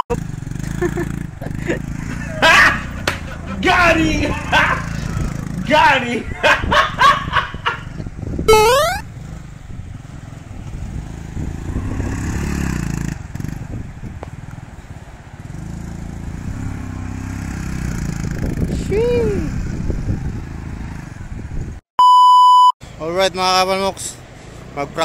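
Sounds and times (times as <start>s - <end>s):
small motorcycle engine revving: 0.1s - 3.6s, 4.3s - 5.7s, 8.0s - 13.8s, 15.4s - 21.3s.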